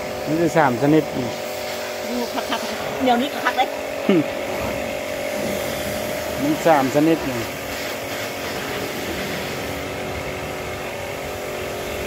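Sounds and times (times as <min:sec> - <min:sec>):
constant hiss: 0:00.0 - 0:12.0
steady motor hum: 0:00.0 - 0:12.0.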